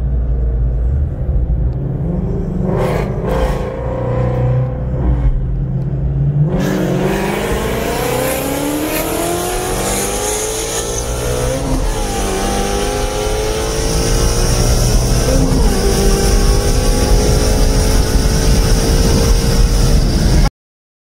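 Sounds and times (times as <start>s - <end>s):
car engine accelerating: 0.0s - 20.5s
road noise: 0.0s - 20.5s
rushing wind: 0.0s - 20.5s.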